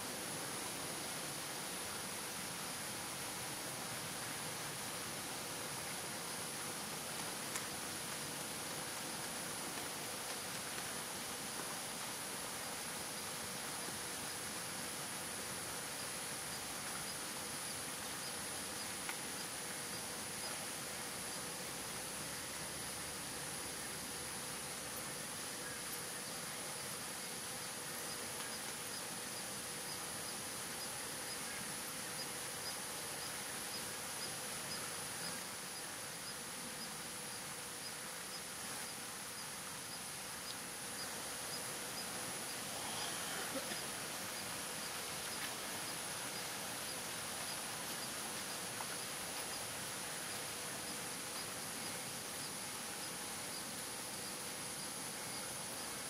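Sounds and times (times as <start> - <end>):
faint ticking insect call: 0.0 - 56.0
insects droning: 0.0 - 56.0.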